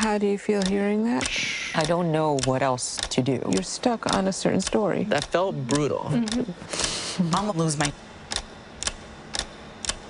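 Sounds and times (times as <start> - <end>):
sharp ticking: 0.0 - 6.4, 7.7 - 10.0.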